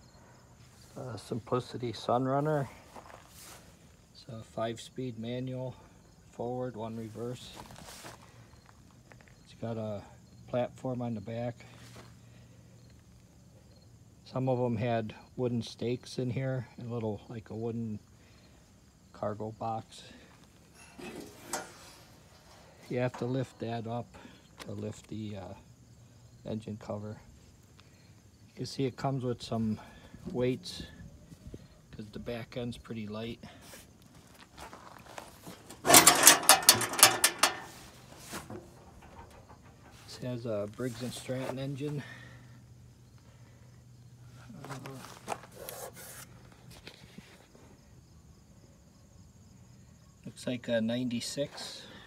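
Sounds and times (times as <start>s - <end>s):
cricket chirping: 0.0s - 1.6s, 7.6s - 52.0s
faint outdoor background: 0.0s - 52.0s.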